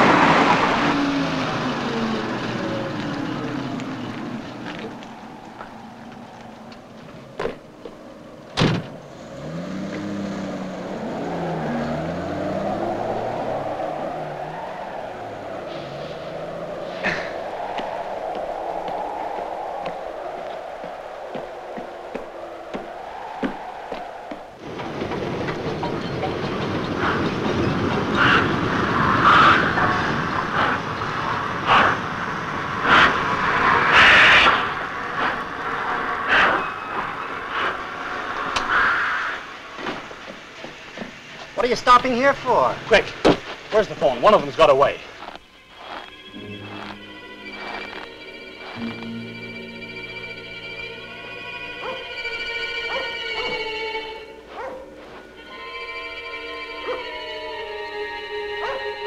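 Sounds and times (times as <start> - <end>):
truck engine running: 0.0 - 55.4
railway clanks and knocks: 20.8 - 33.7, 36.6 - 45.3.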